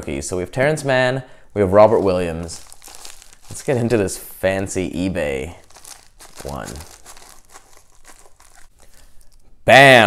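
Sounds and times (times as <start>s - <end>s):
plastic packaging crinkling: 2.0s - 4.3s, 5.3s - 9.5s.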